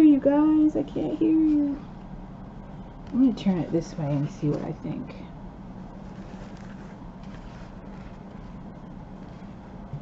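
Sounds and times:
steady low hum: 0.0s - 10.0s
fabric rustling: 5.8s - 10.0s.

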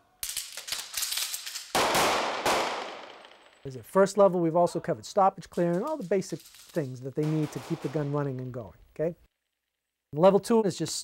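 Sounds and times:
rapid pistol shots: 1.7s - 3.4s, 7.2s - 8.2s
loud close pistol shot ringing: 1.8s - 3.3s, 7.2s - 8.3s.

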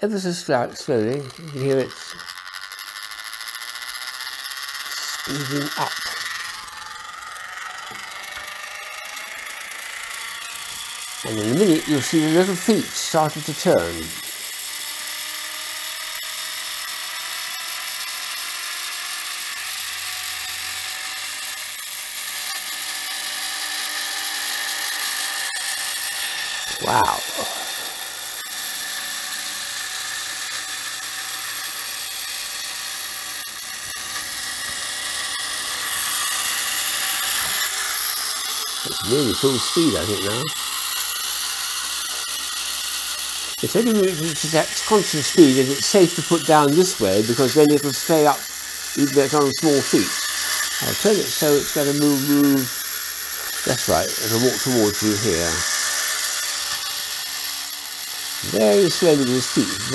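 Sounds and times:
high-pitched electric whir: 0.0s - 59.9s.

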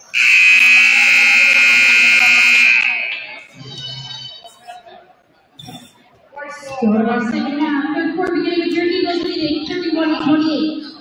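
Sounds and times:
scoreboard buzzer blast: 0.0s - 3.5s.

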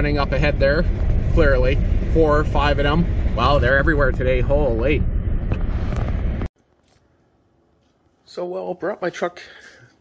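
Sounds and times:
pickup engine and tyres rumbling: 0.0s - 6.5s
wind noise: 0.0s - 6.5s.

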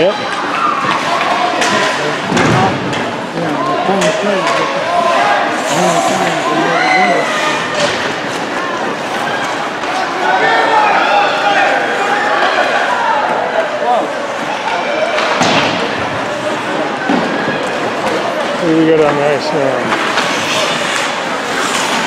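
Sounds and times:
voices of players and spectators: 0.0s - 22.0s
impacts against rink boards: 19.8s - 22.0s.

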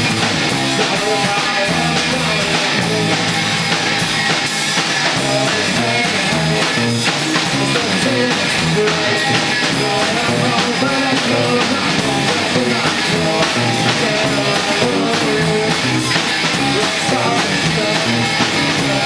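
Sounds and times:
bass guitar: 0.0s - 19.0s
distorted electric guitar: 0.0s - 19.0s
drum kit: 0.0s - 19.0s.

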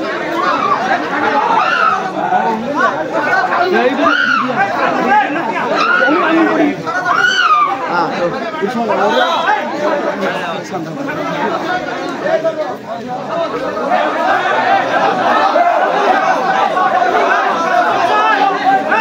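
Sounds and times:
crowd talking and calling out: 0.0s - 19.0s.

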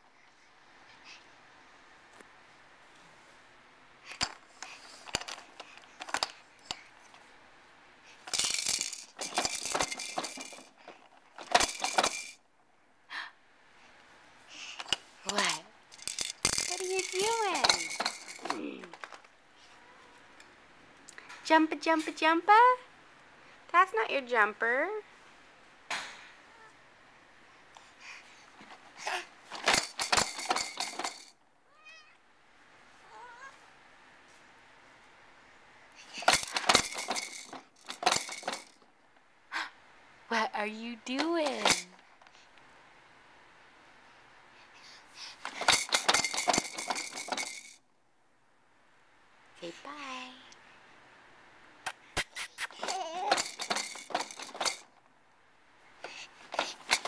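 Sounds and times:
plastic toys rattling: 4.1s - 6.8s, 8.2s - 12.4s, 14.7s - 19.3s, 28.7s - 31.4s, 36.0s - 38.8s, 41.1s - 42.0s, 45.3s - 47.8s, 52.3s - 55.0s, 56.0s - 57.0s.

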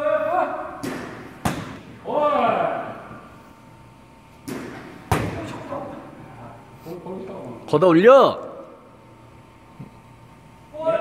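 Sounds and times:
baseball bat hitting balls: 0.6s - 2.0s, 4.4s - 5.6s.

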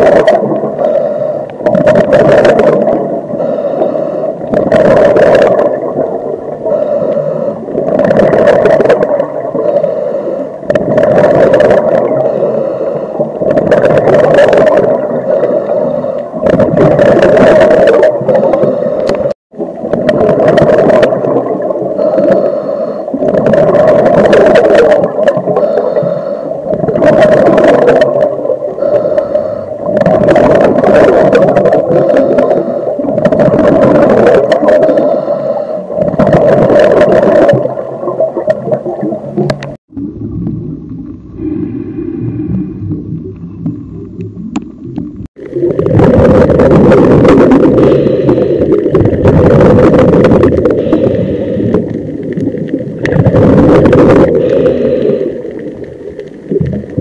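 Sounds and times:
scuba breathing and bubbles: 0.0s - 57.0s.

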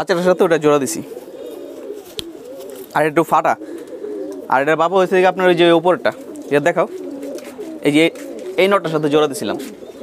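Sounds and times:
man speaking: 0.0s - 1.1s, 2.9s - 3.6s, 4.5s - 7.0s, 7.8s - 9.8s
pigeons cooing: 0.0s - 10.0s.

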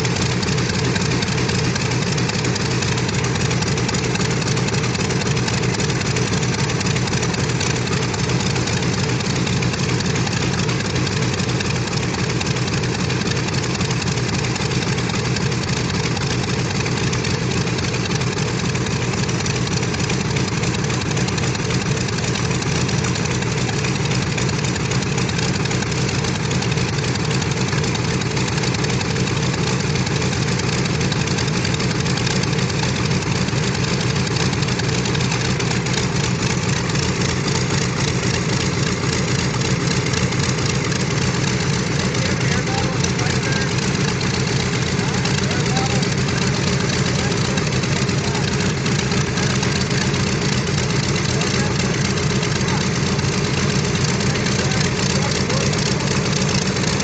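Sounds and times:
radial engines idling: 0.0s - 57.0s.

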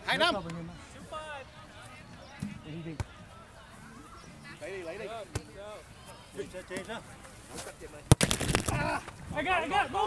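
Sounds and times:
players' voices: 0.0s - 10.0s.

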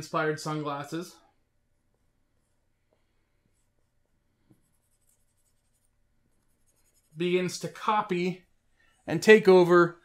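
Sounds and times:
marker scratching on whiteboard: 4.5s - 7.9s.

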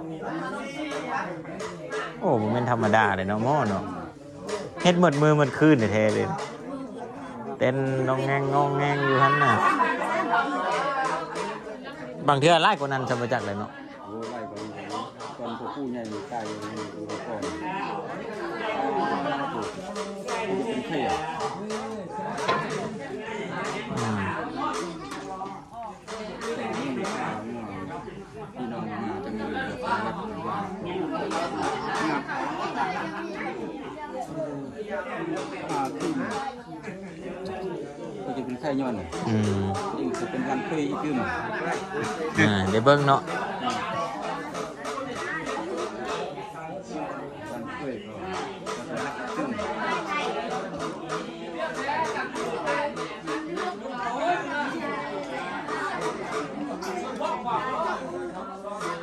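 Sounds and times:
overlapping chatter of voices: 0.0s - 59.0s
people talking over one another: 0.0s - 59.0s.

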